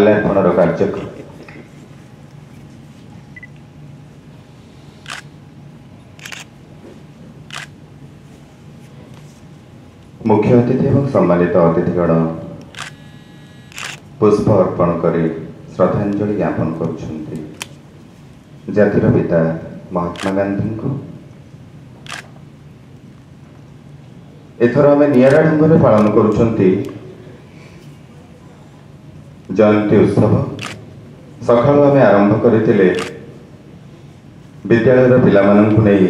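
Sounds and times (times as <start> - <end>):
camera shutter clicks: 5.0 - 5.3, 6.2 - 6.5, 7.5 - 7.8, 12.6 - 14.1, 20.1 - 20.4, 22.0 - 22.4, 25.1 - 26.2, 30.6 - 30.8, 32.9 - 33.2.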